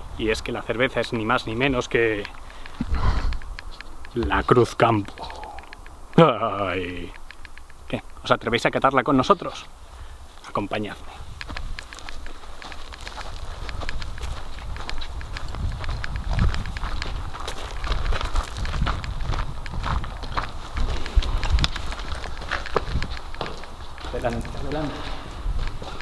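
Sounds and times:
handheld camera rumble: 0:00.0 - 0:08.3, 0:10.3 - 0:26.0
footsteps on dirt and rubble: 0:01.6 - 0:05.6, 0:10.3 - 0:26.0.

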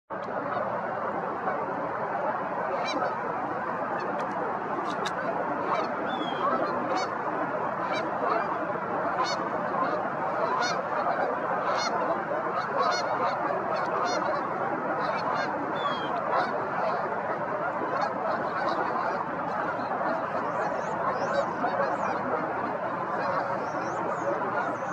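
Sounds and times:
flock of waterfowl calling: 0:00.1 - 0:24.9.

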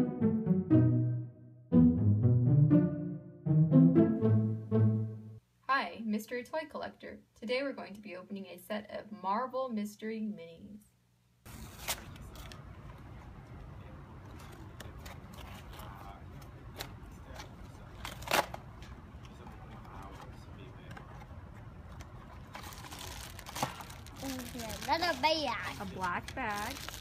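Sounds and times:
cardboard tearing: 0:11.5 - 0:12.5, 0:22.6 - 0:27.0
plastic film crinkling: 0:22.3 - 0:27.0.

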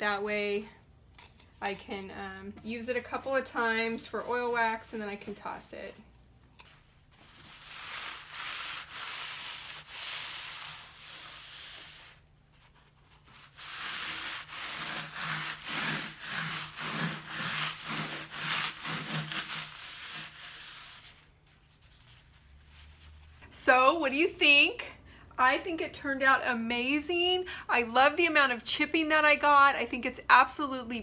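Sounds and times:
cloth rubbing on wooden table: 0:06.6 - 0:23.4.

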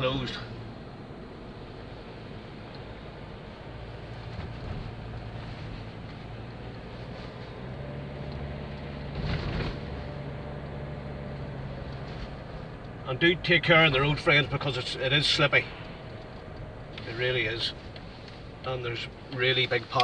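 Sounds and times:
car engine and road noise: 0:00.0 - 0:20.0.

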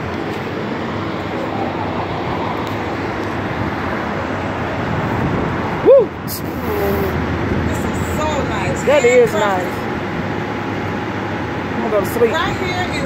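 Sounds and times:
semi trucks idling: 0:00.0 - 0:13.0
traffic rumble: 0:00.0 - 0:13.0.

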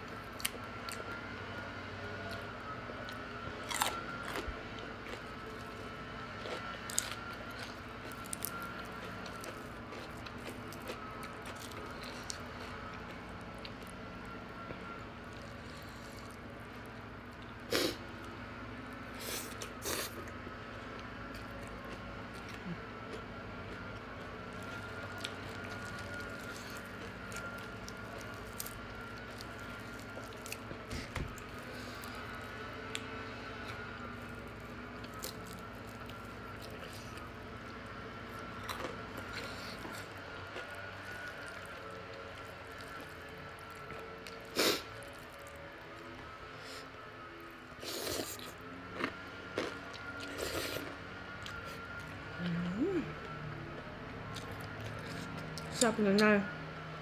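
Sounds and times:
food crunching: 0:00.0 - 0:52.5, 0:53.1 - 0:56.3
chewing and wet mouth sounds: 0:02.2 - 0:18.3, 0:19.2 - 0:46.2, 0:47.7 - 0:56.4.

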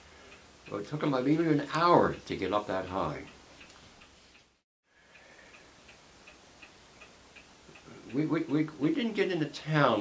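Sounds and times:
faint regular ticking: 0:00.1 - 0:10.0.

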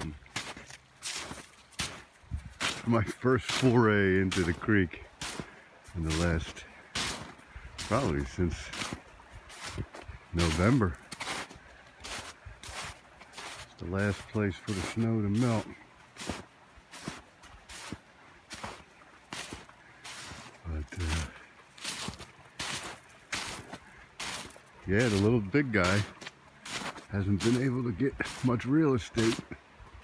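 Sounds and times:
footsteps crunching in snow: 0:00.0 - 0:29.5.

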